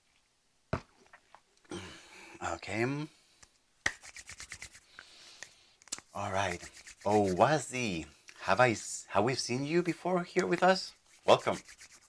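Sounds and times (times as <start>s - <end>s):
hands rubbing together: 3.8s - 8.0s, 10.5s - 12.0s.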